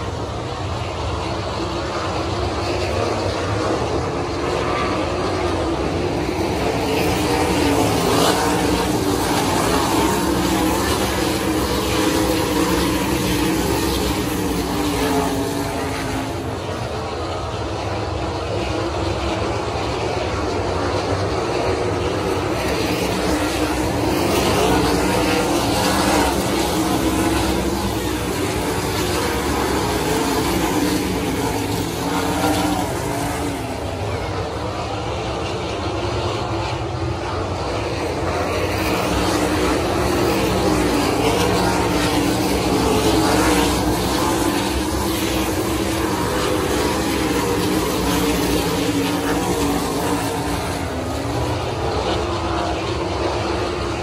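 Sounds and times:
race car engines roaring: 0.0s - 54.0s.

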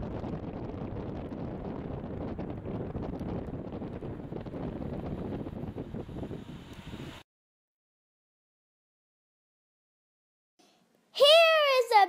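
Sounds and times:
wind buffeting microphone: 0.0s - 7.2s.

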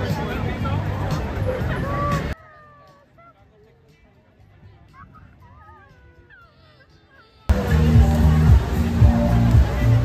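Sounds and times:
low street murmur: 0.0s - 10.0s.

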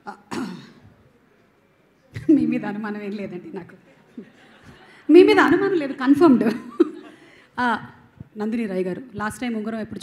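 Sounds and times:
person clearing throat: 0.2s - 0.9s.

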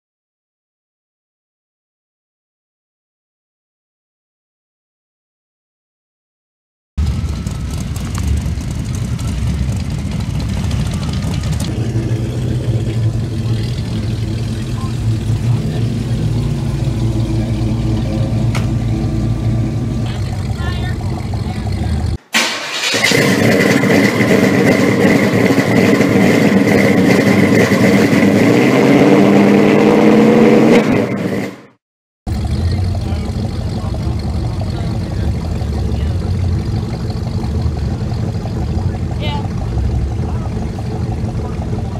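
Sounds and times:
car engines idling with revs: 7.0s - 31.5s, 32.3s - 41.9s.

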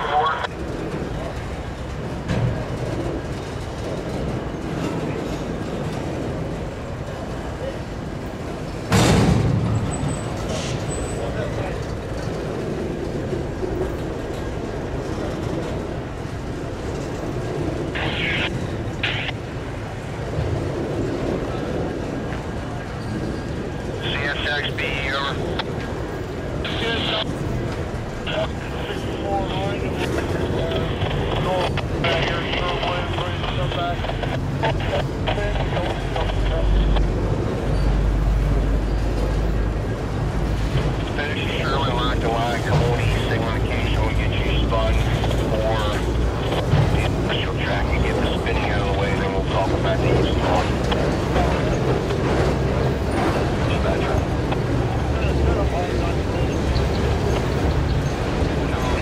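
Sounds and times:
people talking: 0.0s - 1.4s, 10.6s - 11.9s, 17.9s - 19.4s, 23.9s - 25.8s, 26.4s - 27.4s, 28.2s - 37.1s, 40.8s - 51.8s, 53.2s - 57.4s, 58.5s - 59.0s
freight train rolling past: 0.0s - 59.0s.

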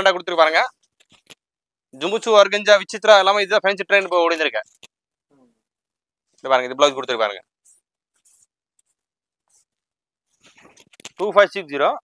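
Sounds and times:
fabric rustling: 6.2s - 11.3s.

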